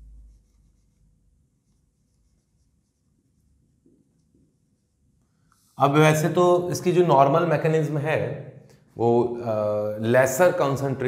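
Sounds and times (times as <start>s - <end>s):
low rumble: 0.0s - 0.6s
marker scratching on whiteboard: 0.1s - 5.8s.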